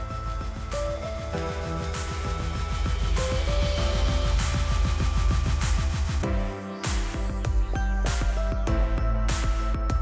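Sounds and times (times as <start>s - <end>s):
electronic music with steady beat: 0.0s - 10.0s.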